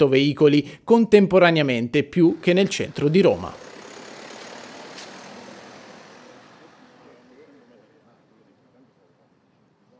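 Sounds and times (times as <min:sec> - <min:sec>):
road traffic passing: 0:02.1 - 0:09.9.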